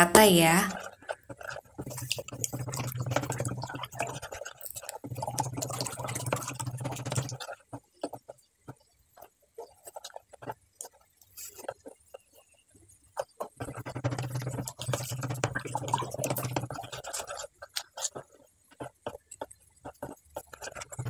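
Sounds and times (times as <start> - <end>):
spoon stirring batter in bowl: 0.1 - 21.0.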